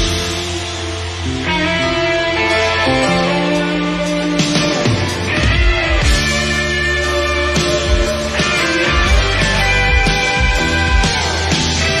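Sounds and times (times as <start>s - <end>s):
bass guitar: 0.0s - 12.0s
drums: 0.0s - 12.0s
electric guitar sustained notes: 0.0s - 12.0s.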